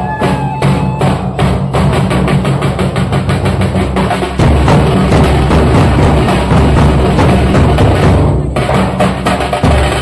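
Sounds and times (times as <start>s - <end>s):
drums beaten in fast roll: 0.0s - 10.0s.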